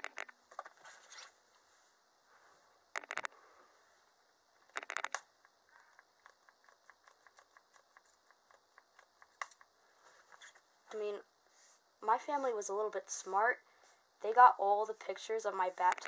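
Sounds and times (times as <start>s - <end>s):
light handling ticks: 4.7s - 10.6s.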